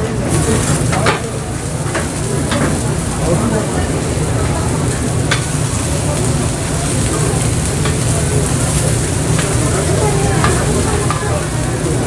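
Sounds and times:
pancakes sizzling in oil: 0.3 - 12.0.

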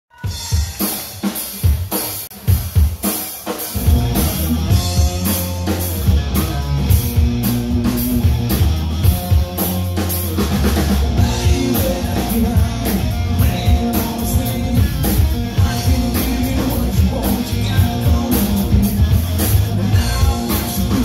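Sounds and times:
bass guitar: 0.1 - 21.0
drum kit: 0.1 - 21.0
electric guitar: 0.1 - 21.0.

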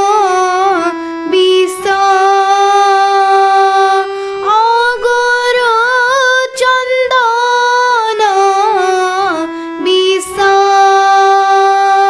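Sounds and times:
girl singing a long note: 0.0 - 12.0
harmonium chord: 0.0 - 12.0.

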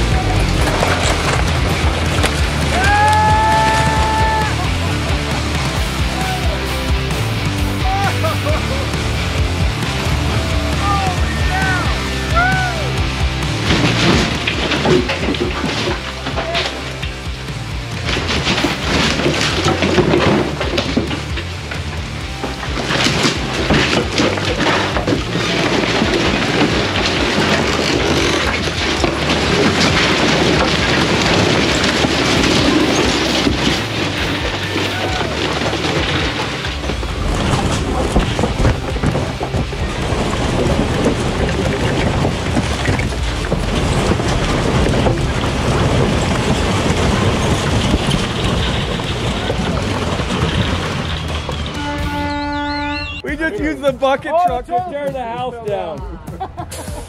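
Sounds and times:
background music: 0.0 - 57.0
house creaking and crashing down: 0.0 - 57.0
timber and debris falling: 0.0 - 57.0.

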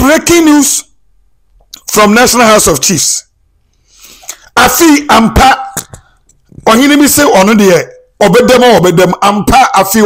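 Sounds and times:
breath: 3.7 - 4.5, 5.9 - 6.4.

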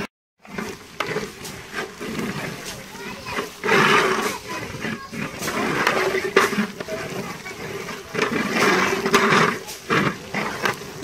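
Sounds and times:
people talking indistinctly: 2.0 - 11.0.

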